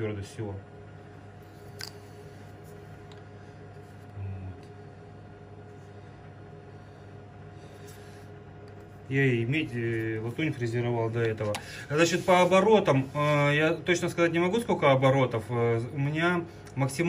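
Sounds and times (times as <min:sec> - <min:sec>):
workshop hum: 0:00.0 - 0:17.0.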